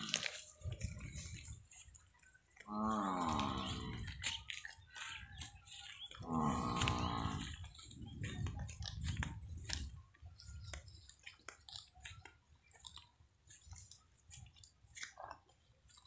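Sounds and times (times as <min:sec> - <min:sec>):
grazing crunching and tearing: 0:00.0 - 0:16.0
water buffalo calling: 0:06.0 - 0:07.7.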